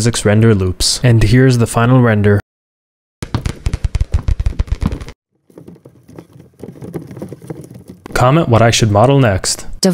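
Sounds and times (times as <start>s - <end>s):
small hard balls clattering: 4.9s - 8.2s.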